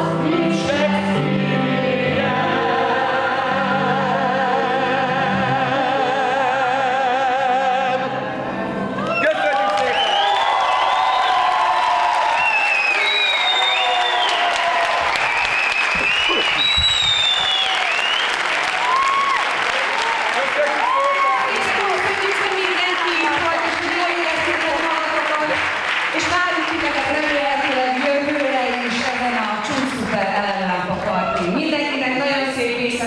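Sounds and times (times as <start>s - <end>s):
crowd cheering and calling out: 8.7s - 24.1s
audience applauding: 9.0s - 31.7s.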